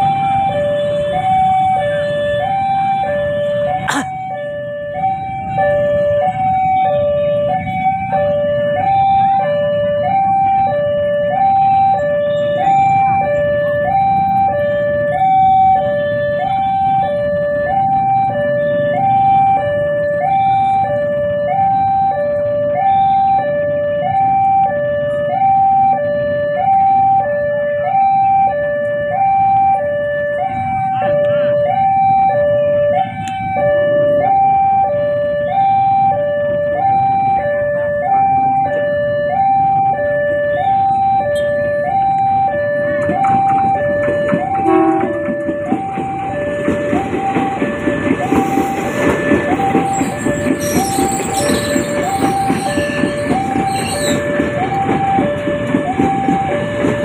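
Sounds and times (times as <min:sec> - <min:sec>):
level-crossing warning alarm: 0:00.0 - 0:57.0.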